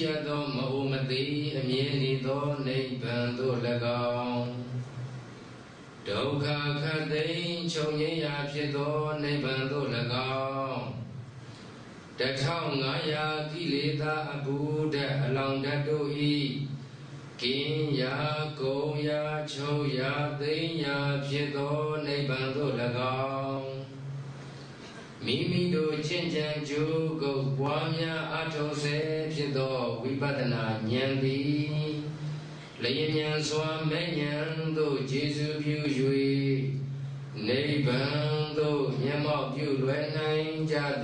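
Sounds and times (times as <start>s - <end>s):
man chanting through microphone: 0.0s - 5.2s, 6.0s - 11.4s, 12.2s - 24.3s, 25.0s - 41.0s
steady low hum: 0.0s - 41.0s.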